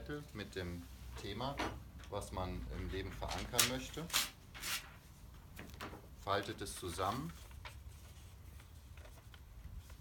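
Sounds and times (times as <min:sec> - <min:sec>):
paper rustling: 0:06.6 - 0:10.0.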